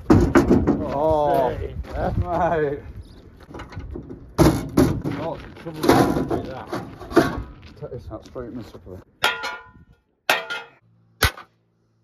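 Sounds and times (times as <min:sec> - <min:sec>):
loud knocks on metal: 0:00.0 - 0:00.9, 0:03.9 - 0:05.1.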